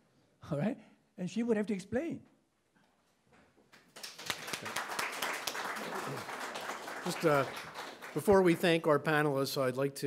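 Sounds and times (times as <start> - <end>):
audience applauding: 3.8 - 9.3.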